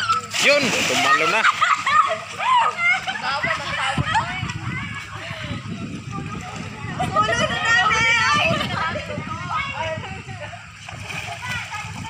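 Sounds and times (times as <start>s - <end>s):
water splashing in pool: 0.0s - 5.2s, 6.0s - 12.0s
faint voices: 0.0s - 12.0s.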